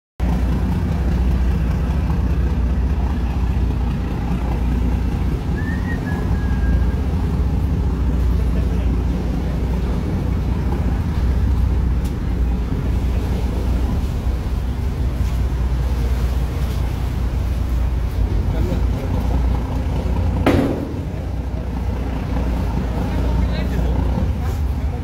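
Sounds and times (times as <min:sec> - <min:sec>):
boat engine rumbling: 0:00.2 - 0:25.0.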